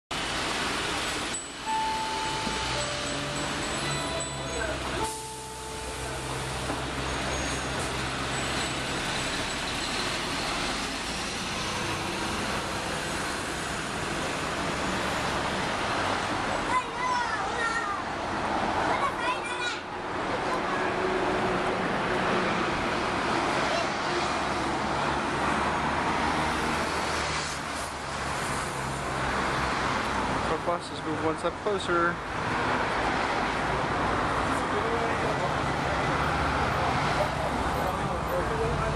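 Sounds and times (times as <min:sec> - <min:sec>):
road noise rush: 0:00.1 - 0:38.9
street noise: 0:00.1 - 0:38.9
bus engine idling: 0:00.2 - 0:18.0
held electronic tones: 0:01.4 - 0:08.6.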